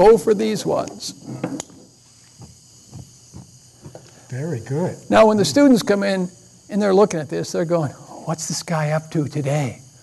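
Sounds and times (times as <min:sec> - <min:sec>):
gas burners hissing: 0:00.0 - 0:10.0.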